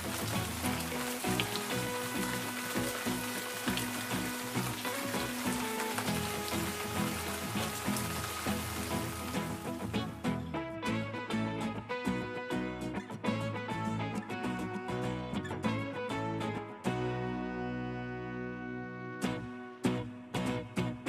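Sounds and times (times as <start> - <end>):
steady rain falling: 0.0 - 10.2
background music: 0.0 - 21.0.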